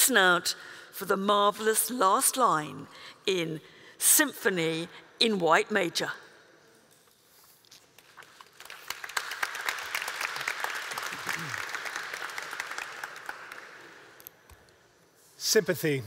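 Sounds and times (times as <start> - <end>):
audience applauding: 8.3 - 14.1.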